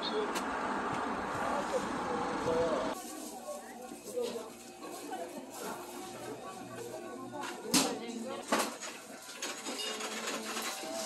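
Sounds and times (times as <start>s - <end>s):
murmur of distant voices: 1.1s - 11.0s.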